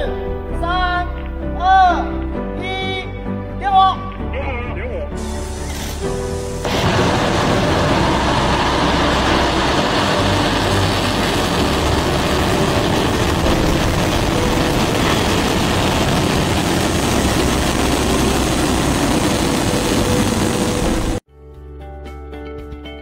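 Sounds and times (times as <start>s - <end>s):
rocket engines roaring: 5.2s - 21.2s.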